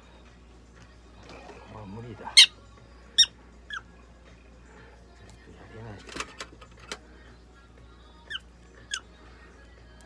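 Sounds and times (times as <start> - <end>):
prairie dog squeaks: 2.3 - 2.6, 3.2 - 3.9, 8.2 - 9.1.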